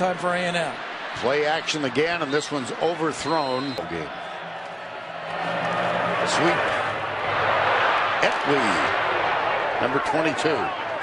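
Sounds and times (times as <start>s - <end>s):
stadium crowd voices: 0.0s - 11.0s.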